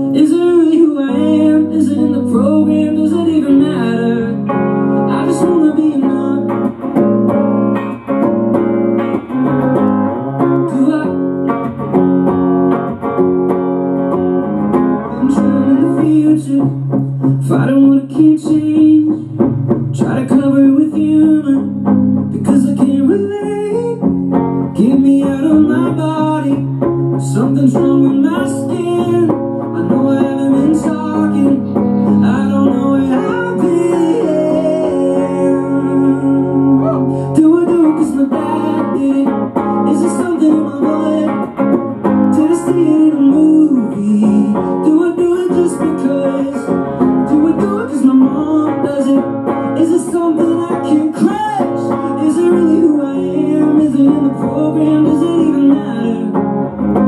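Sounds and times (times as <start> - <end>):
live guitar music: 0.0 - 57.0.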